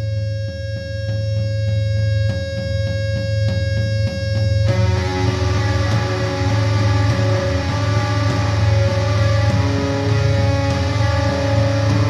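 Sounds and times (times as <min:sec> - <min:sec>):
distorted electric guitars: 0:00.0 - 0:12.0.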